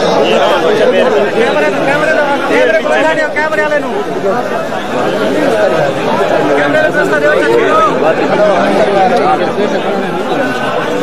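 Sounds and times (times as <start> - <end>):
crowd of men talking: 0.0 - 11.0.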